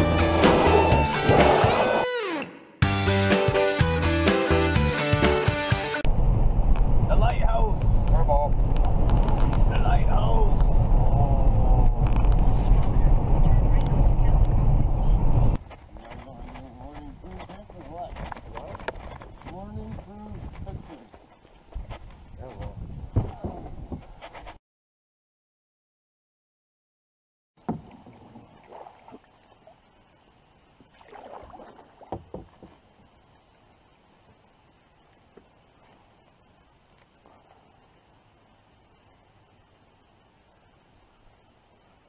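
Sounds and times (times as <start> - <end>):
loud low rumble: 6.1 - 15.6
people talking: 7.1 - 8.6, 9.7 - 11.8, 12.8 - 18.8, 19.5 - 21.1, 22.4 - 23.7.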